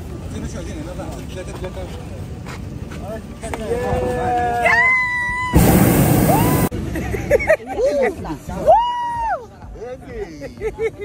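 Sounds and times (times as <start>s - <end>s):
propane burner blast: 5.5s - 6.8s.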